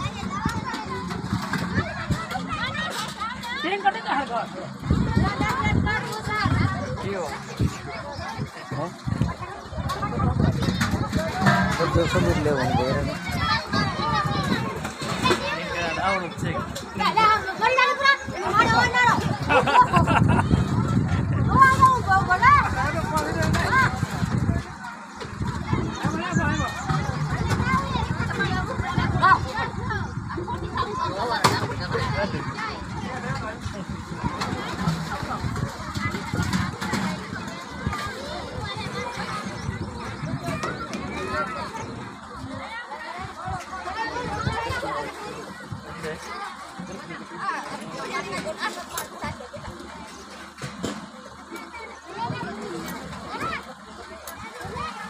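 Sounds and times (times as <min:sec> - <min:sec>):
people talking over one another: 0:00.0 - 0:55.0.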